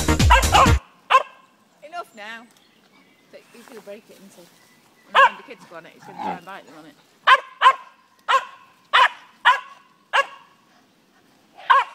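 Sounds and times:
dog barking: 0:00.2 - 0:01.4, 0:05.1 - 0:05.5, 0:07.2 - 0:10.5, 0:11.6 - 0:11.9.

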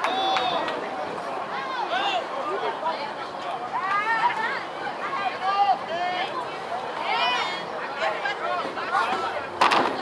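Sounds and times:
bystanders chattering and calling out: 0:00.0 - 0:10.0.

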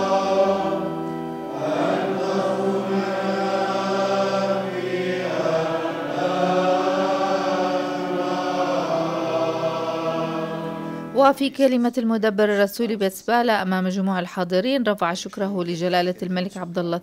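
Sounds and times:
voices chanting long notes: 0:00.0 - 0:11.3.

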